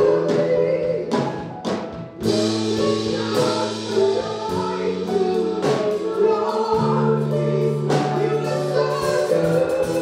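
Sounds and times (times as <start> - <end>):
group singing gospel: 0.0 - 10.0.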